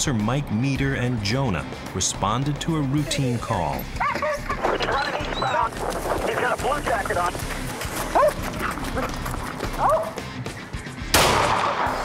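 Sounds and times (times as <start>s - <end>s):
music: 0.0s - 12.0s
voices: 2.5s - 11.0s
dog barking and yelping: 4.0s - 5.8s, 8.1s - 10.2s.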